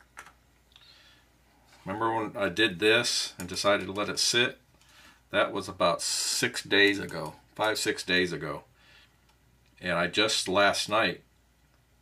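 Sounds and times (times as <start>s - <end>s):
plastic parts clicking and tapping: 0.0s - 0.4s.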